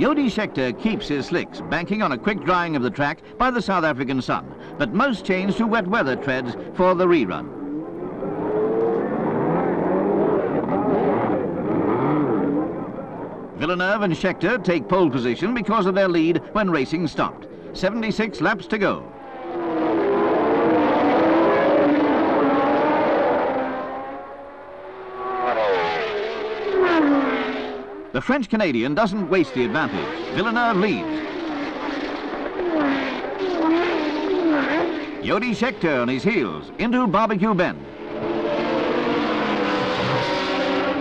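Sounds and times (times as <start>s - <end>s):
racing car passing: 0.0s - 16.5s, 17.4s - 28.2s, 28.8s - 41.0s
racing car engines accelerating: 0.0s - 41.0s.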